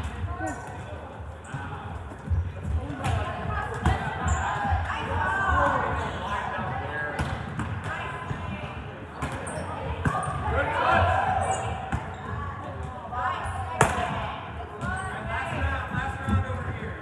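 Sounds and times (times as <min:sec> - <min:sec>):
volleyballs smacking and bouncing: 0:00.0 - 0:13.1, 0:13.7 - 0:17.0
players chattering and calling: 0:00.0 - 0:17.0.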